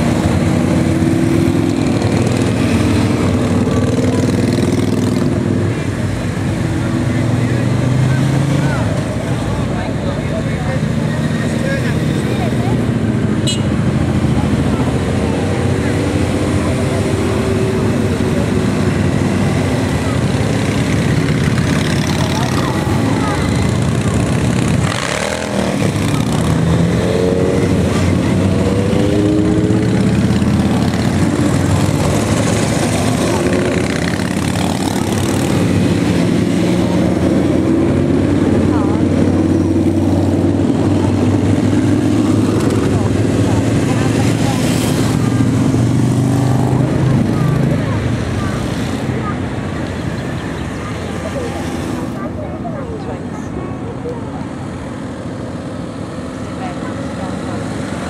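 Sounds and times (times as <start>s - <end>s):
motorcycles riding past: 0.0s - 58.0s.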